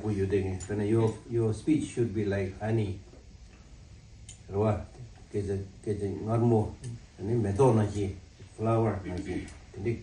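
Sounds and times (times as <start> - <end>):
man speaking: 0.0 - 3.1, 4.5 - 10.0.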